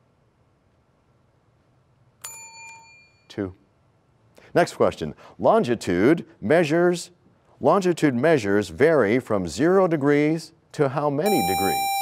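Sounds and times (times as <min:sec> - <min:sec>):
faint room hiss: 0:00.0 - 0:12.0
electronic buzzer ding: 0:11.3 - 0:12.0.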